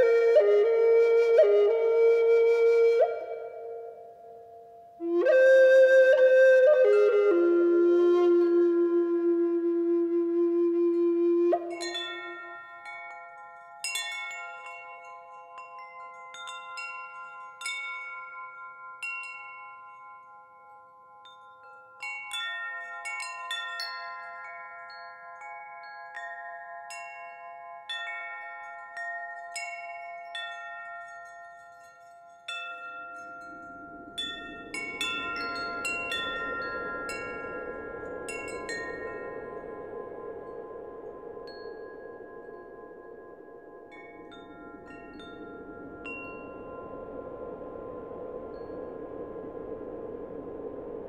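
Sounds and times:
chimes ringing: 11.7s - 47.8s
soft rushing noise: 33.2s - 51.0s.

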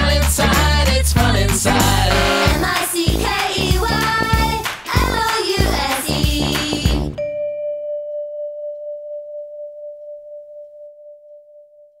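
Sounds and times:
bell-like tone ringing: 7.2s - 12.0s.

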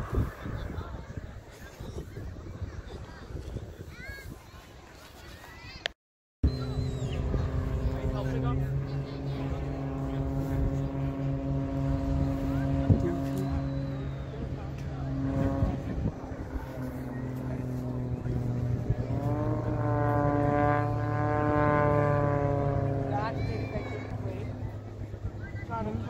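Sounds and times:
propeller plane engine droning: 0.0s - 3.8s, 6.4s - 26.0s.

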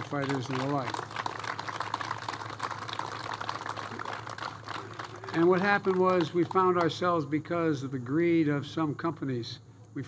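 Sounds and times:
crowd applauding: 0.0s - 6.9s.

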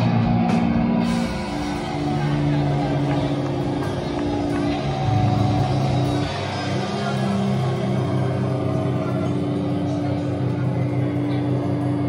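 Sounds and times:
bass guitar: 0.0s - 12.0s
distorted electric guitar: 0.0s - 12.0s.

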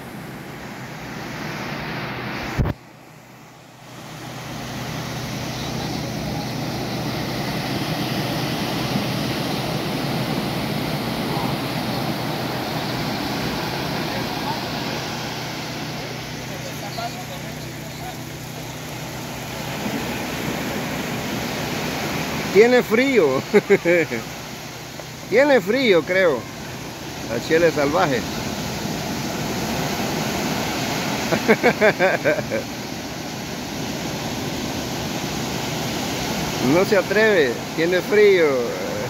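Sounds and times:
ocean surf breaking: 0.0s - 39.0s.

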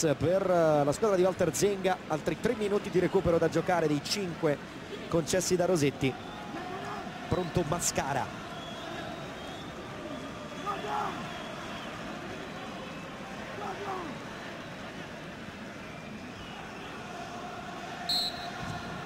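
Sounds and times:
stadium crowd noise: 0.0s - 19.0s
referee's whistle blast: 18.1s - 19.0s.

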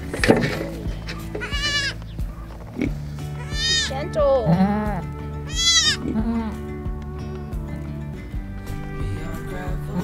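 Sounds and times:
background music: 0.0s - 10.0s
goat kid bleating: 1.0s - 2.0s, 3.3s - 6.4s.

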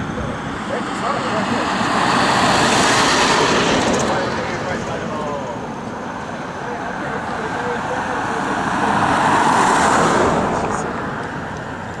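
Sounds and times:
vehicle passing: 0.0s - 12.0s.

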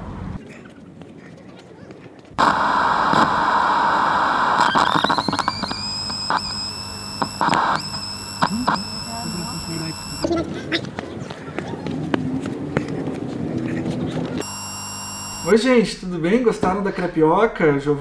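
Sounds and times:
loud rush of noise: 2.4s - 6.6s
high whine: 2.4s - 10.3s, 14.4s - 16.0s
short clicks: 4.5s - 9.1s.

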